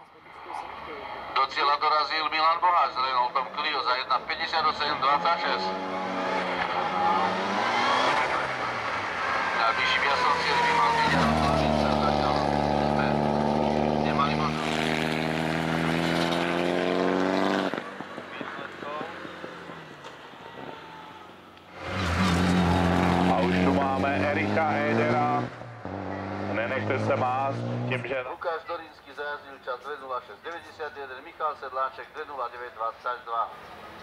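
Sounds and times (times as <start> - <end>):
car engine revving at full throttle: 4.4 - 28.1.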